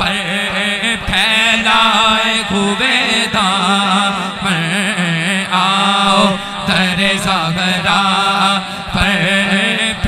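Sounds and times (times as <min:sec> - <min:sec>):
man singing through a microphone: 0:00.0 - 0:10.0.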